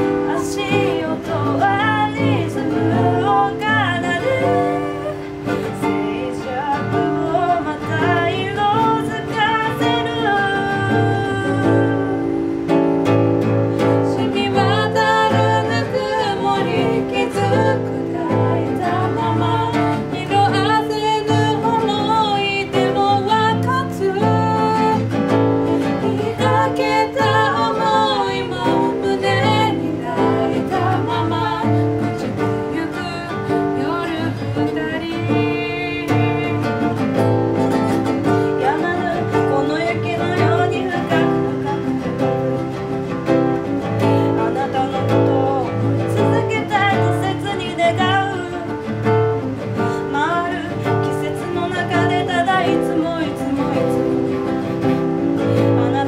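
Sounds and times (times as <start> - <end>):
acoustic guitar: 0.0 - 56.0
woman singing: 0.0 - 56.0.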